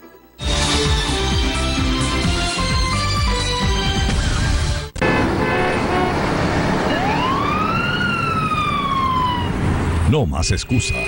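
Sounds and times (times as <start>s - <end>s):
siren wailing: 4.0s - 10.1s
street traffic: 4.1s - 11.0s.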